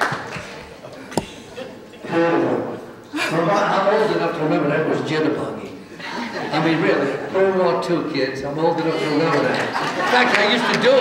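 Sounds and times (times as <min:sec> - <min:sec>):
man talking: 0:06.5 - 0:11.0.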